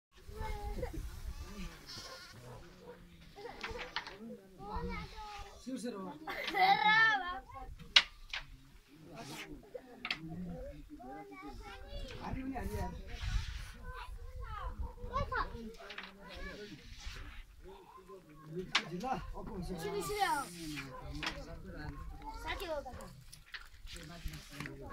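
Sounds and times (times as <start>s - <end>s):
people's voices: 0.2s - 24.9s
sheep and goats bleating: 1.2s - 2.4s.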